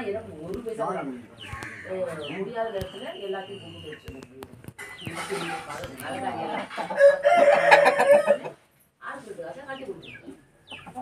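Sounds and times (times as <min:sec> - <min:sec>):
chickens clucking: 0:00.0 - 0:08.8, 0:09.5 - 0:11.0.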